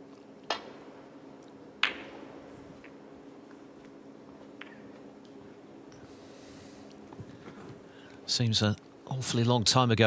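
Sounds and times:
cue tip striking ball: 1.8 - 2.3.

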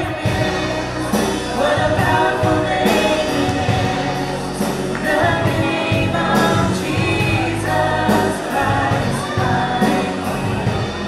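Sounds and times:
band playing: 0.0 - 11.0
group of voices singing: 0.0 - 11.0
steady bass line: 0.0 - 11.0.

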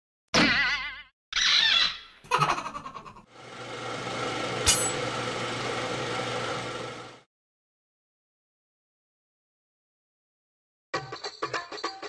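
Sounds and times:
mechanical whir with low hum: 3.4 - 7.2.

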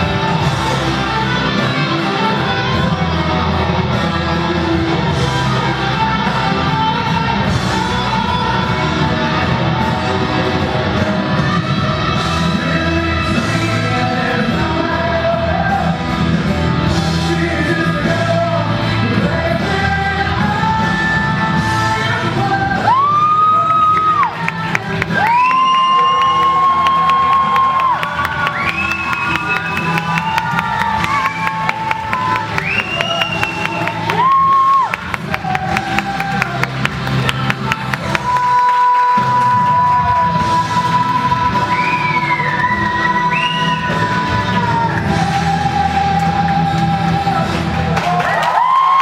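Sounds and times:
audience cheering and whooping: 22.8 - 49.0.

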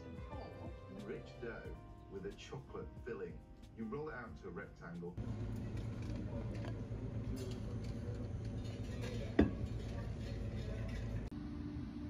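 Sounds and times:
low room hum: 5.2 - 12.0
faint background voices: 5.5 - 11.3.

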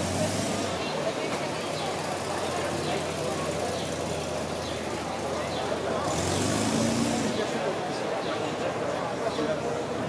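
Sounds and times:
vehicle engine: 0.0 - 8.2
crowd chatter: 0.0 - 10.0.

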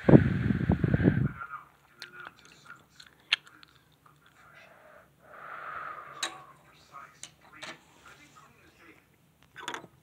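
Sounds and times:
soft breath: 4.3 - 7.0.

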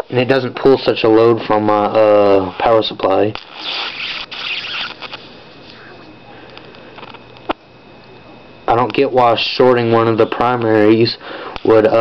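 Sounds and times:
electrical hum and whine: 0.0 - 12.0
high-voltage arc hissing: 2.4 - 5.8
sharp electrical snap: 3.3 - 5.3.

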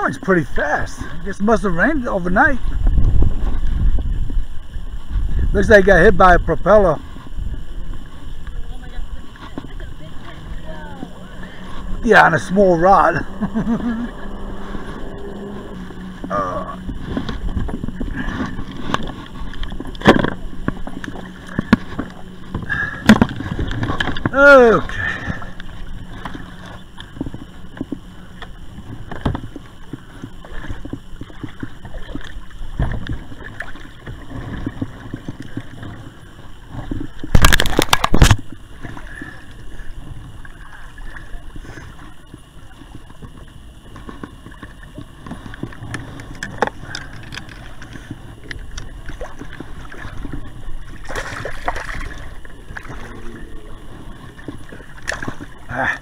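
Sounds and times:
water sloshing around feet: 7.0 - 56.0.

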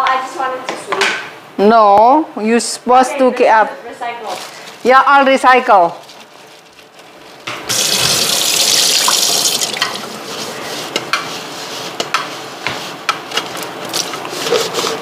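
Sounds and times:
kitchen tap turned on: 7.6 - 10.1
tap water running into sink: 7.7 - 10.1.

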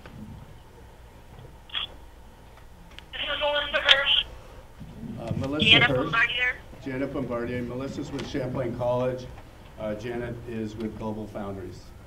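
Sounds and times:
voice over speakerphone: 3.2 - 4.3, 5.4 - 6.6.

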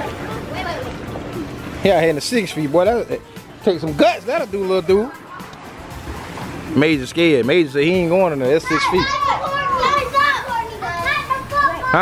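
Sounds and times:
children shouting: 8.4 - 12.0.

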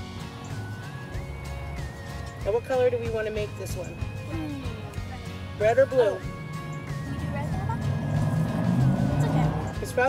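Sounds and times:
background music: 0.0 - 10.0
car passing: 5.1 - 10.0.

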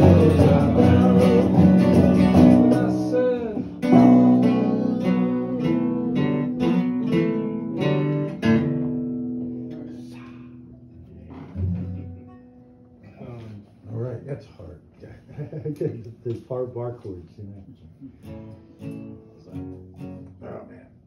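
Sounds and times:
acoustic guitar playing: 0.0 - 13.2, 18.1 - 20.6.

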